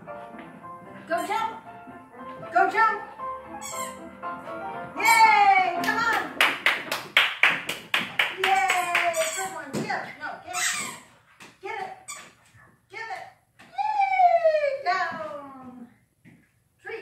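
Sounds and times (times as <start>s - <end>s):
hand claps: 5.8s - 9.3s.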